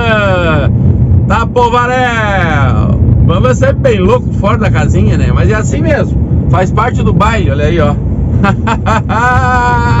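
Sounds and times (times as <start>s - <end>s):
truck cab rumble: 0.0s - 10.0s
man laughing: 8.4s - 10.0s.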